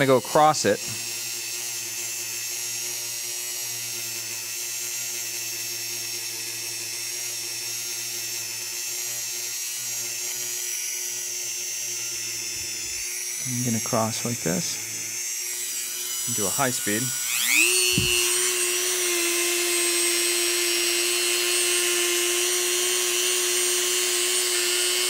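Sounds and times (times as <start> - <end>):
rotary tool whine: 0.0 - 25.0.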